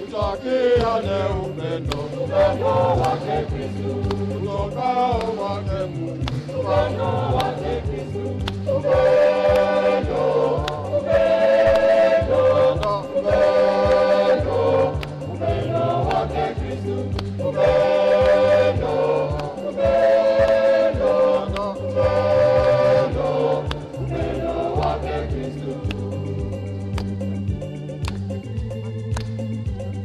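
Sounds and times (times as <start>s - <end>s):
choir and congregation singing hymn: 0.0s - 27.7s
instrumental accompaniment with bass: 0.0s - 30.0s.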